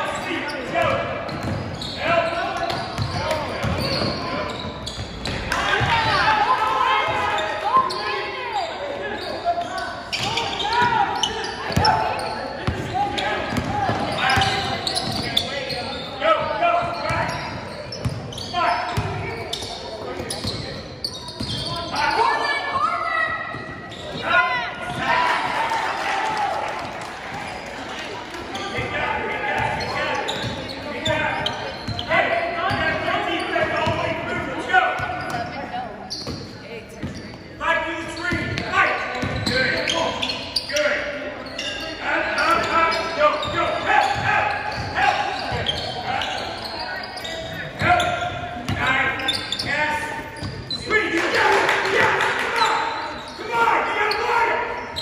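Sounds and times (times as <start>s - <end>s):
voices and shouts echoing: 0.0s - 55.0s.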